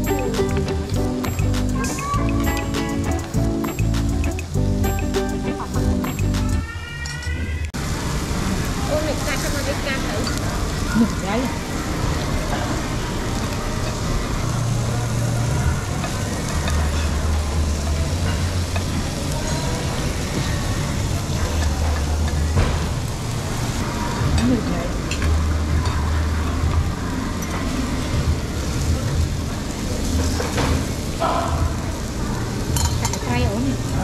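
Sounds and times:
background music: 0.0s - 6.9s
meat sizzling on a grill plate: 7.8s - 34.0s
faint voices: 8.4s - 34.0s.

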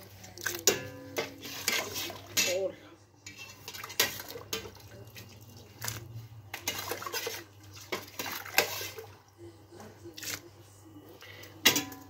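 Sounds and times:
metal ladle clinking on pot: 0.4s - 4.8s, 11.6s - 12.0s
liquid sloshing and dripping: 3.3s - 9.4s.

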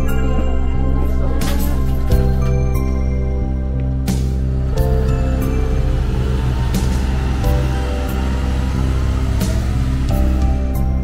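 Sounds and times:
background music held chords: 0.0s - 11.0s.

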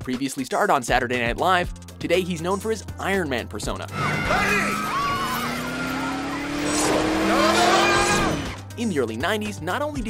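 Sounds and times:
car tyres squealing: 3.9s - 8.6s
passengers screaming: 3.9s - 8.6s
steady tone rising in pitch: 3.9s - 8.6s.

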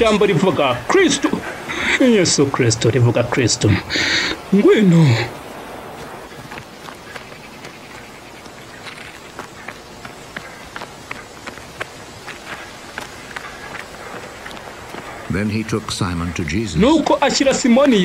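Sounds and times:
steady outdoor hiss: 0.0s - 18.0s
footsteps running on sand: 5.3s - 15.7s.

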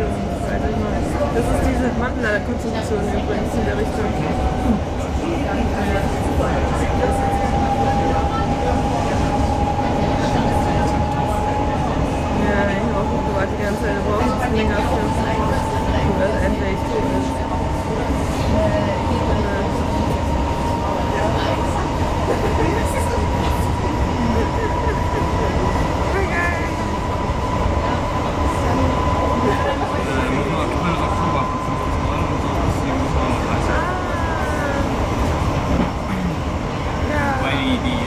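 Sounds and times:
train rolling rumble: 0.0s - 38.0s.

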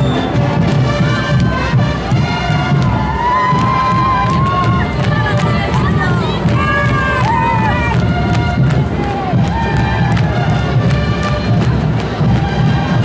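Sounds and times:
crowd voices: 0.0s - 13.0s
dense low drumming: 0.0s - 13.0s.

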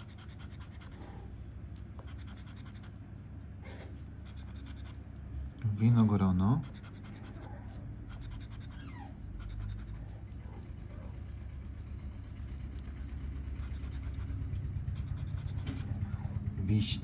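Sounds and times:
scraper scratching lottery ticket: 0.0s - 1.2s, 2.0s - 3.0s, 4.2s - 5.0s, 5.8s - 16.2s.

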